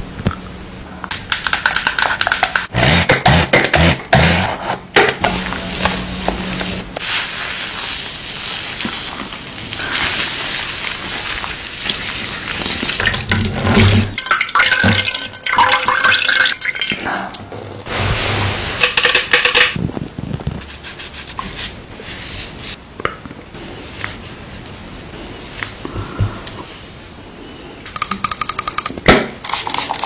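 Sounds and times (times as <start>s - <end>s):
hands rubbing lather on skin: 5.4s - 13.0s
water splashing and running: 6.6s - 16.8s.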